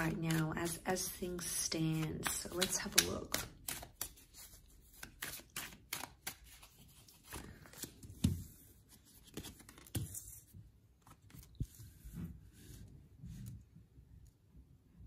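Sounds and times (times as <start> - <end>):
cards shuffled: 0.0 - 12.0.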